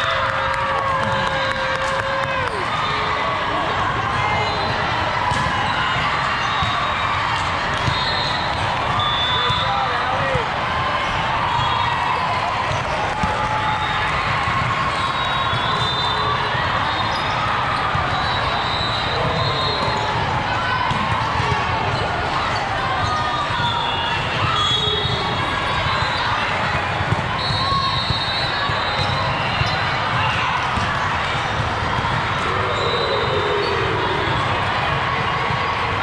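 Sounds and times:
many overlapping voices: 0.0s - 36.0s
volleyballs struck and bouncing: 4.0s - 15.9s, 19.1s - 32.8s.

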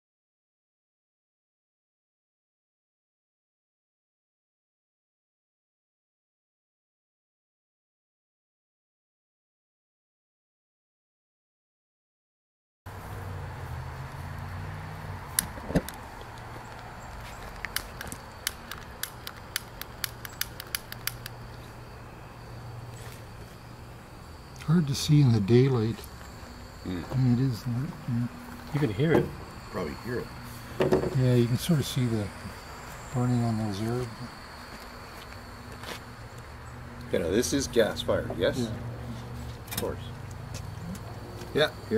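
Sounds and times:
steady low hum: 12.9s - 41.9s
gas burner igniter clicks: 17.7s - 21.4s.

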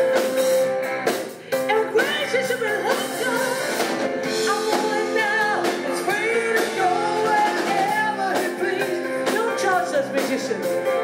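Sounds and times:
live rock band: 0.0s - 11.0s
woman singing: 1.5s - 10.8s.

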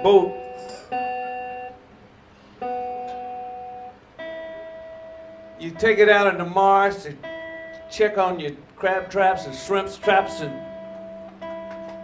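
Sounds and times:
guitar chord ringing: 0.0s - 1.9s, 2.6s - 12.0s.

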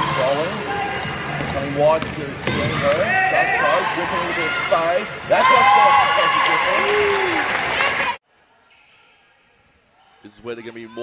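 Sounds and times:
sneakers squeaking on court: 0.6s - 3.1s
basketball bouncing: 0.8s - 3.1s
players shouting: 2.4s - 8.2s.

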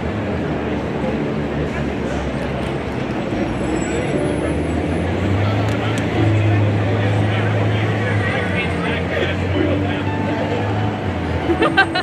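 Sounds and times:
vehicle engine humming: 0.0s - 12.0s
people talking nearby: 0.1s - 12.0s.

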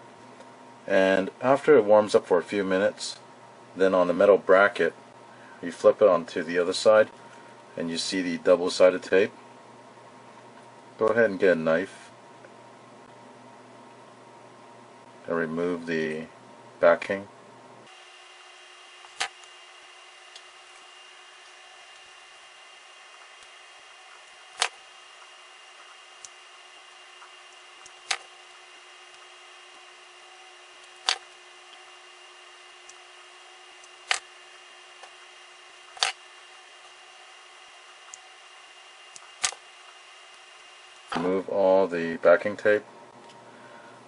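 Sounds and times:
sharp knife clicks on tape: 24.6s - 24.8s, 31.0s - 31.2s, 36.0s - 36.2s, 39.4s - 39.6s.

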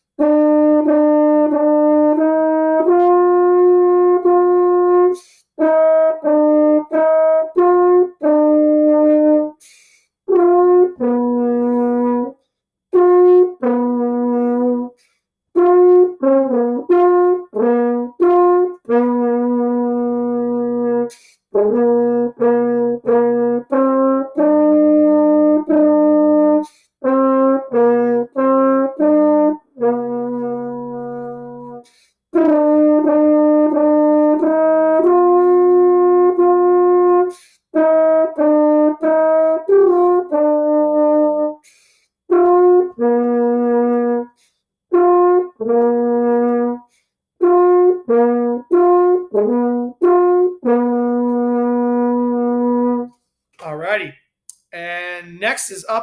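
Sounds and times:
french horn playing tune: 0.0s - 53.2s.

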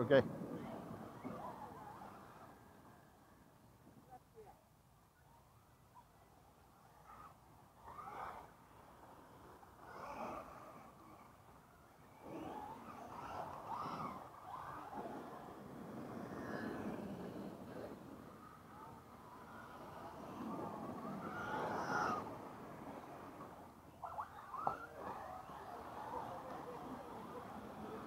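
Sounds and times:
rc car motors whining: 12.1s - 15.3s.

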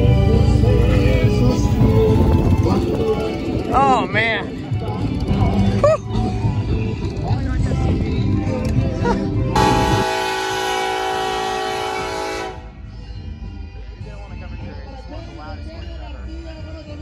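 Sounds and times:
locomotive air horn: 9.6s - 12.8s.

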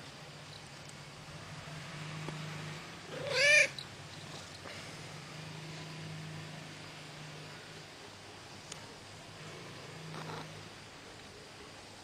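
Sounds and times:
cat meowing: 3.1s - 3.8s.

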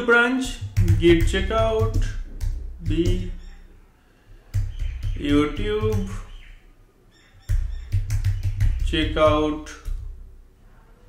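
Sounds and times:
computer keyboard typing: 0.6s - 3.6s, 7.4s - 9.0s.

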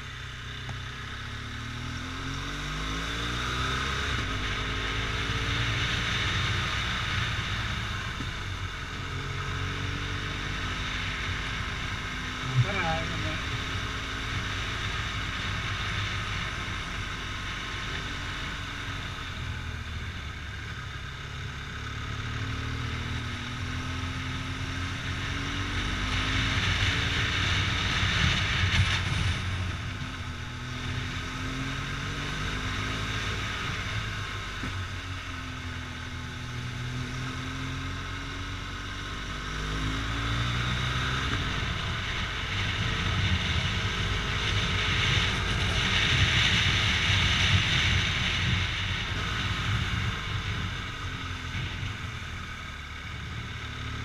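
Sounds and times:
motorcycle engine revving: 0.0s - 54.0s
wind and road noise: 0.0s - 54.0s.

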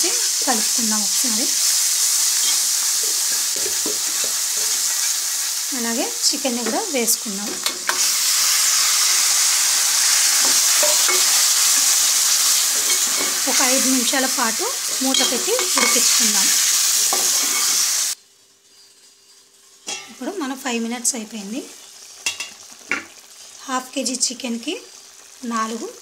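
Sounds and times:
food sizzling in hot oil: 0.0s - 26.0s
metal spoon stirring in pot: 10.3s - 11.4s, 14.9s - 16.2s.

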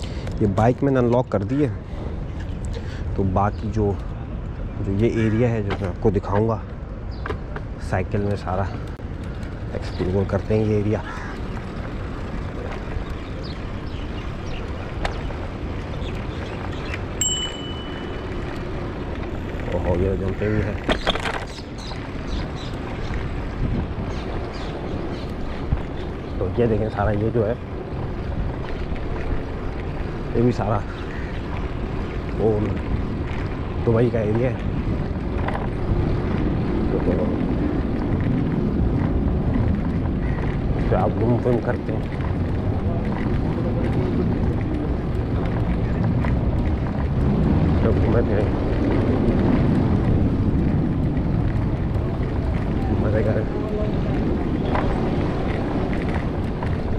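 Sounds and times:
bicycle rolling: 0.0s - 56.9s
wind and tyres rushing: 0.0s - 56.9s
short ringing tone: 17.2s - 18.4s.

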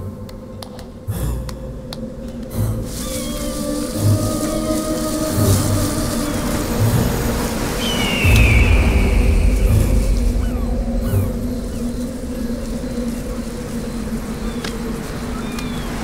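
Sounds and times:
soft low beats: 0.0s - 15.8s
dramatic film score: 0.0s - 16.0s
rain: 1.8s - 16.0s
rushing wind: 2.0s - 16.0s.

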